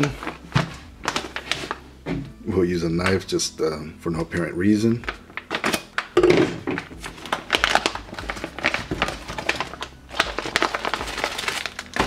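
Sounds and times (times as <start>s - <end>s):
plastic pouch crinkling: 0.0s - 1.8s, 5.0s - 12.0s.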